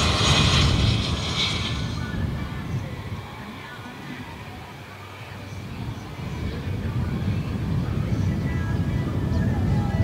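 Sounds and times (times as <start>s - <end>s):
jet engines rumbling: 0.0s - 8.0s.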